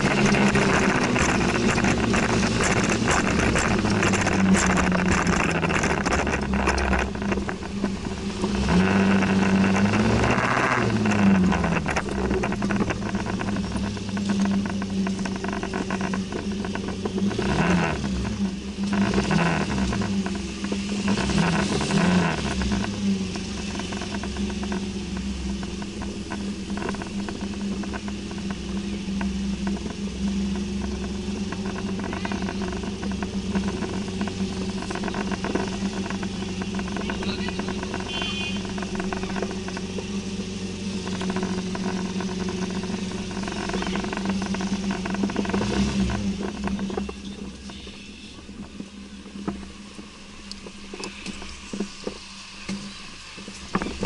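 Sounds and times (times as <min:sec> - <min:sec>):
scooter engine running: 0:00.0 - 0:54.0.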